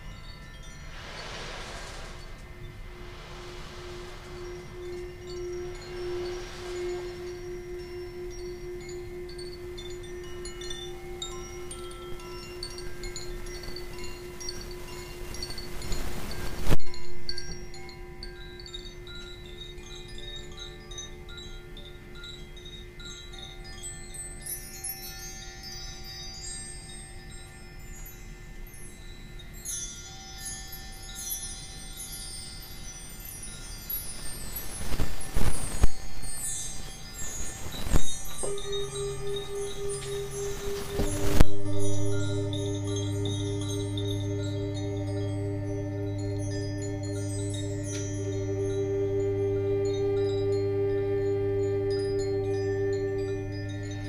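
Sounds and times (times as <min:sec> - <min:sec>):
rushing swell: 0:00.0 - 0:16.8, 0:36.0 - 0:54.0
bar chimes swept: 0:00.0 - 0:54.0
high chime notes: 0:00.0 - 0:54.0
singing bowl ringing: 0:00.0 - 0:54.0.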